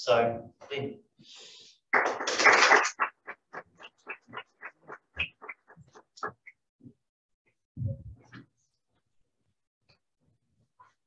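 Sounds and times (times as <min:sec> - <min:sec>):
audience applause: 0:01.9 - 0:05.4.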